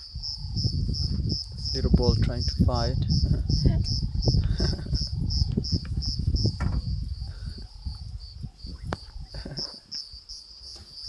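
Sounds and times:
insect chirping: 0:00.0 - 0:11.0.

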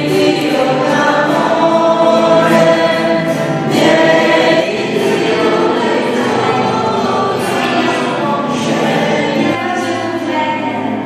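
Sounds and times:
congregation singing a hymn: 0:00.0 - 0:11.0.

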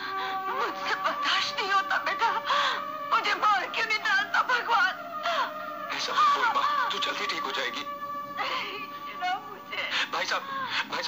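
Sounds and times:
melodramatic background music: 0:00.0 - 0:11.0.

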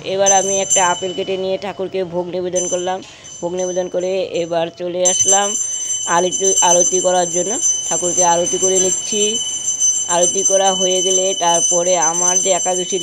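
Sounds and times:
brass hand bell ringing: 0:02.6 - 0:04.3, 0:05.0 - 0:13.0.

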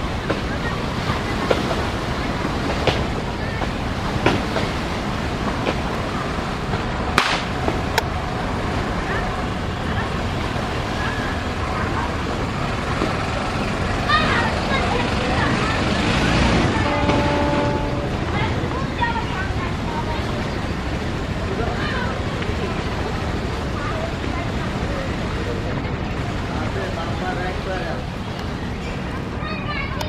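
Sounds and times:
boat bow wave rushing: 0:00.0 - 0:30.0.

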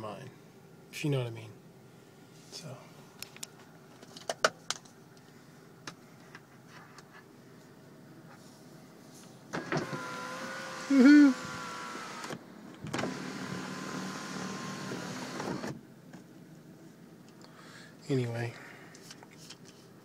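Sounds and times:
electric window motor whine: 0:09.5 - 0:15.8.

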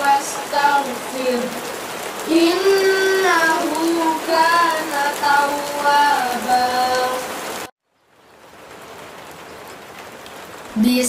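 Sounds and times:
steady rain: 0:00.0 - 0:11.0.

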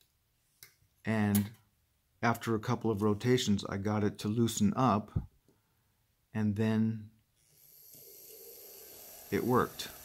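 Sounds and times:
small fan motor whirring: 0:07.5 - 0:10.0.

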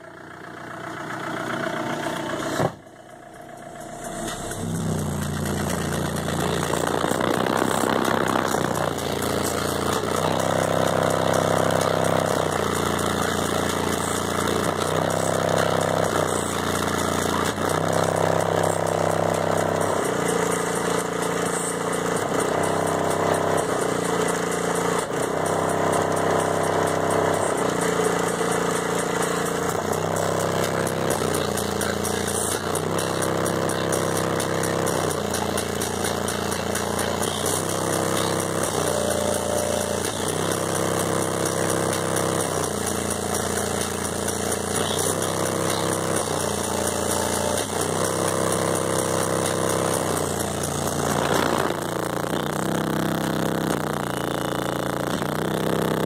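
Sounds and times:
bass-heavy music through subwoofers: 0:01.2 - 0:56.0.

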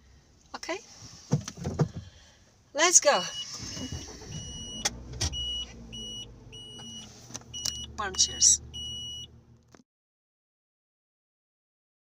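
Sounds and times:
car warning chime beeping: 0:02.8 - 0:09.4.

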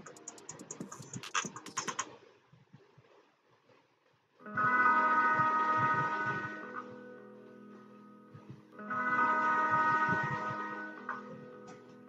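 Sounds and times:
computer keyboard keys clicking: 0:00.0 - 0:02.1.

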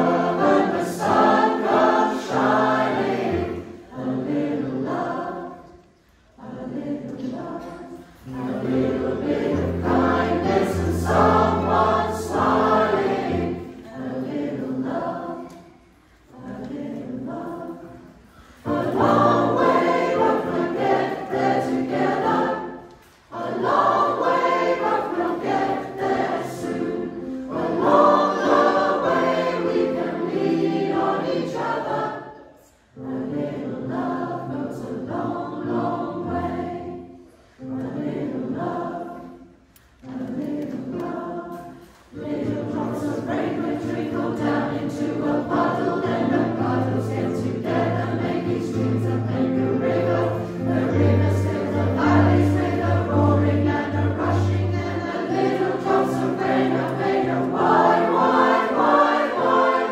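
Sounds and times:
choir singing: 0:00.0 - 0:59.9
digital piano accompaniment: 0:08.2 - 0:14.8, 0:18.6 - 0:22.9, 0:40.3 - 0:59.9.

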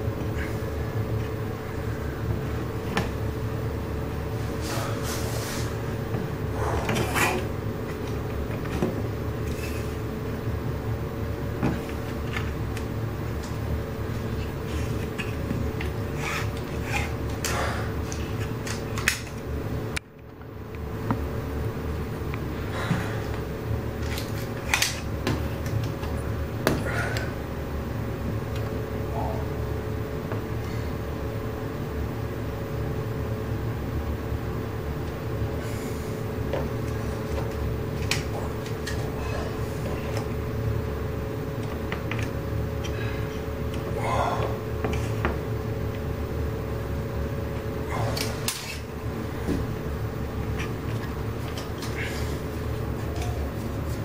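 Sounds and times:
low hum: 0:00.0 - 0:54.0.

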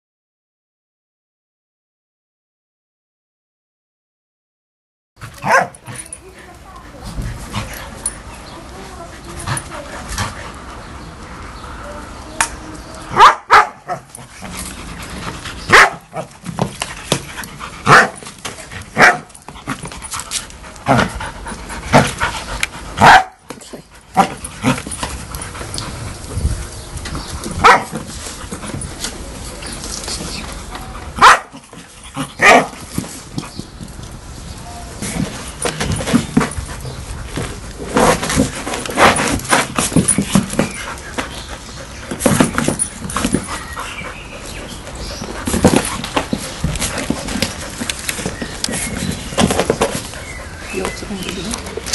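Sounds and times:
steady background noise: 0:05.2 - 0:51.9
dogs barking: 0:05.3 - 0:06.1, 0:13.1 - 0:14.5, 0:15.6 - 0:16.4, 0:17.8 - 0:18.2, 0:18.9 - 0:19.4, 0:22.8 - 0:23.5, 0:27.6 - 0:28.0, 0:31.1 - 0:32.8.

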